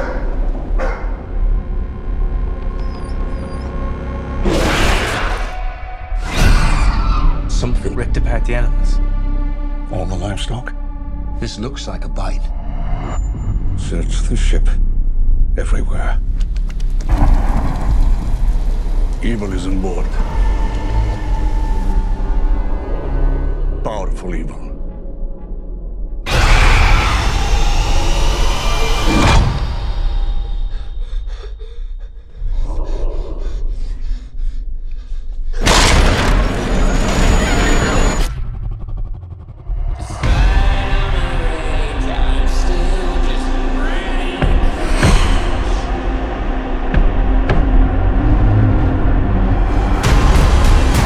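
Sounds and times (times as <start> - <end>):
low rumbling drone: 0.0 - 51.0
loud cinematic hit: 35.6 - 42.4, 49.7 - 51.0.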